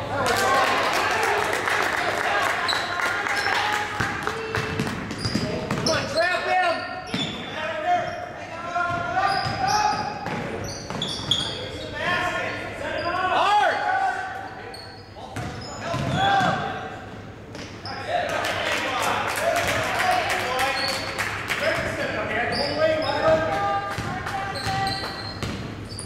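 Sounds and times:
sneakers squeaking: 2.6s - 13.4s, 14.2s - 18.2s, 20.5s - 26.0s.

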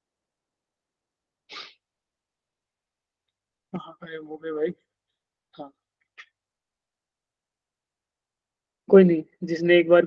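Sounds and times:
person's sharp breathy burst: 1.5s - 1.8s.

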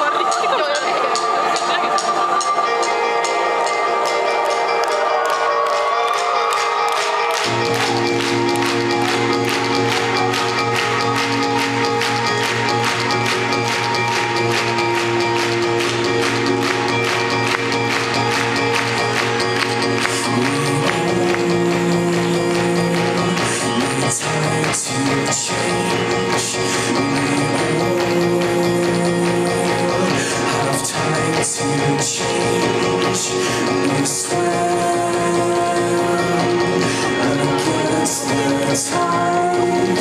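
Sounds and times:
live indie rock band playing: 0.0s - 40.0s
low bass notes: 7.4s - 40.0s.

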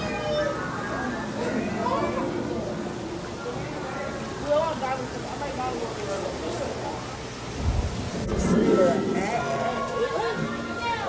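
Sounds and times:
indistinct voices: 8.0s - 11.0s.

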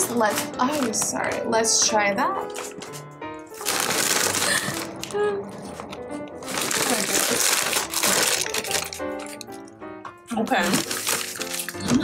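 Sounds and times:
chip bag crinkling and crunching: 0.1s - 1.4s, 3.6s - 9.6s, 10.6s - 12.0s.

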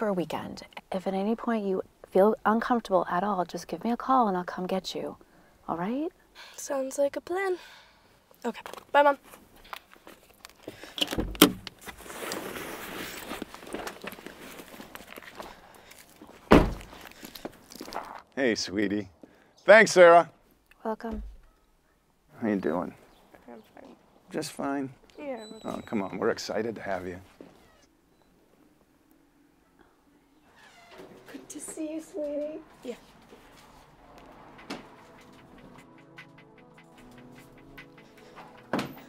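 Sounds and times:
soft rustle of movement: 11.8s - 18.0s, 30.4s - 34.5s
voices: 31.3s - 35.6s.

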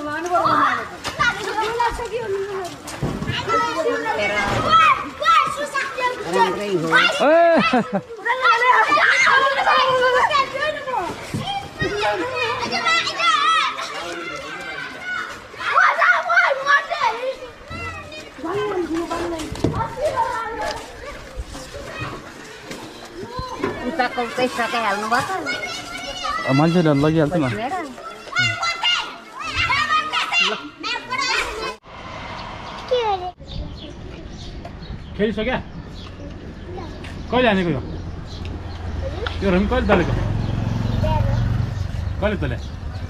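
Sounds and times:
children shouting and squealing: 0.0s - 34.6s.

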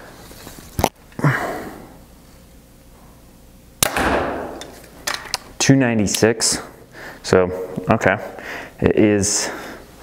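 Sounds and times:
bow firing arrow crack: 3.8s - 4.6s.

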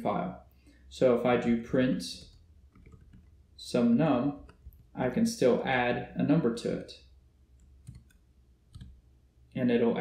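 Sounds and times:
keyboard keystrokes: 2.2s - 3.3s, 7.6s - 9.0s.

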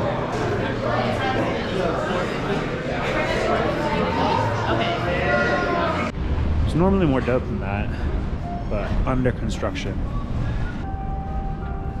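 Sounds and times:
city street noise: 0.0s - 12.0s
faint steady tones: 7.8s - 12.0s.

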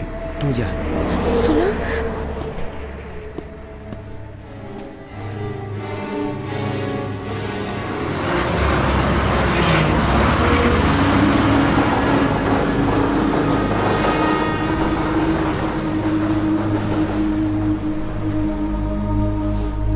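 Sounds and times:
bus engine and road noise: 0.0s - 19.9s.

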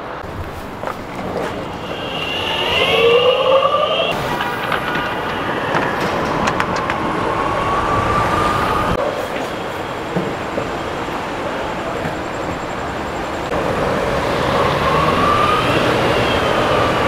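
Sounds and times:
wheels rumbling on ground: 0.0s - 17.0s.

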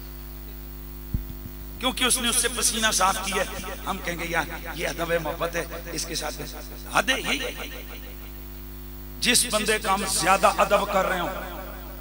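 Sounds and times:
electrical mains hum: 0.0s - 12.0s
short low thump: 1.1s - 1.6s
man's voice: 1.8s - 8.1s, 9.2s - 12.0s.

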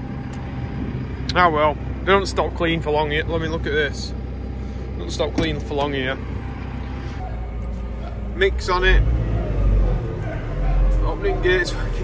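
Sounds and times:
diesel engine idling: 0.0s - 12.0s.

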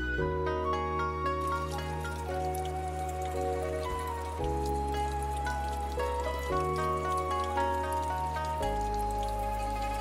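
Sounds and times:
slow background music: 0.0s - 10.0s
stream water splashing over rocks: 1.3s - 10.0s.

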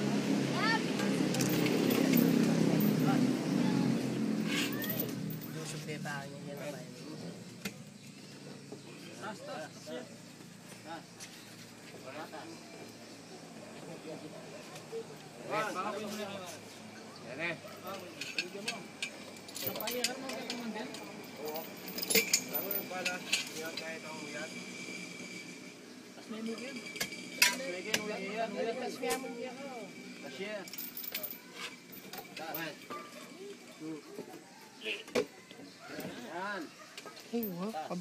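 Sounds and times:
small engine running: 0.0s - 14.2s, 17.9s - 32.9s
metal chain clinking: 1.2s - 3.4s, 4.3s - 5.8s, 17.7s - 25.6s, 30.1s - 33.4s.

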